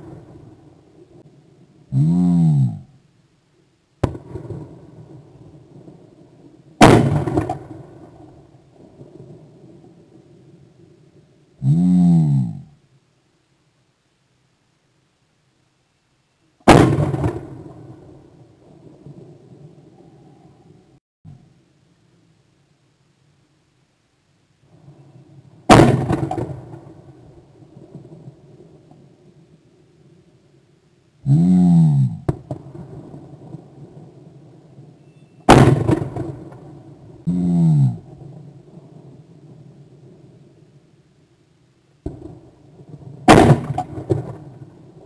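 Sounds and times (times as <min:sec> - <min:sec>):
shotgun shot: 0:04.0 - 0:04.8, 0:06.8 - 0:08.2, 0:16.7 - 0:17.9, 0:25.7 - 0:27.0, 0:35.5 - 0:36.6, 0:43.2 - 0:44.6.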